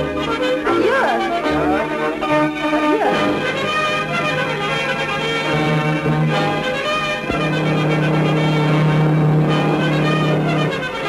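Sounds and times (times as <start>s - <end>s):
orchestral music with brass: 0.0s - 11.0s.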